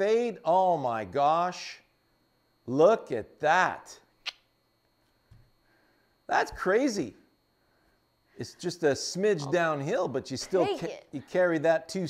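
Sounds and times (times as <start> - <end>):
sharp click: 4.2 - 4.5.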